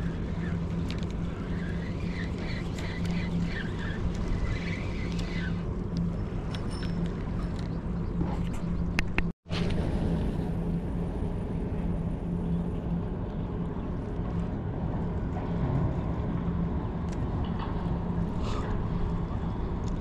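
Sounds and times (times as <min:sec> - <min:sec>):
boat engine droning: 0:00.0 - 0:19.9
wind rumble on microphone: 0:00.0 - 0:20.0.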